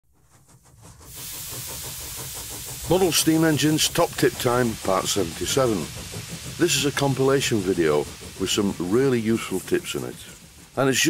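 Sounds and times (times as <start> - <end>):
quick even pulsing: 0.2 - 11.0
steam hissing: 0.2 - 11.0.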